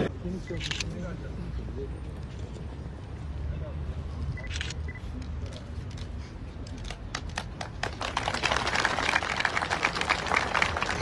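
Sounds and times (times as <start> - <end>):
crowd applauding: 7.1 - 11.0.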